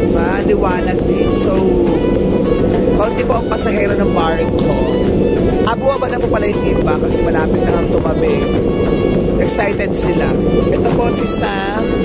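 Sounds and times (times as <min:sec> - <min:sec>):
people talking: 0:00.0 - 0:02.2, 0:02.8 - 0:08.6, 0:09.4 - 0:12.0
ferry engines rumbling: 0:00.0 - 0:12.0.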